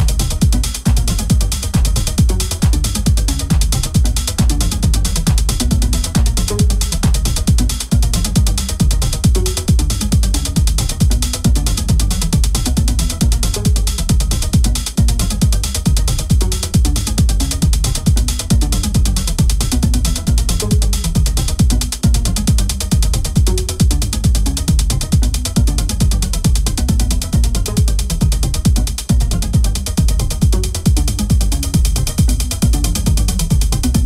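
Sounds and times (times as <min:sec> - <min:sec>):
fast clicking hi-hats: 0:00.0 - 0:34.0
kick drum: 0:00.0 - 0:34.0
mechanical ticking percussion: 0:00.0 - 0:34.0
techno music: 0:00.0 - 0:34.0.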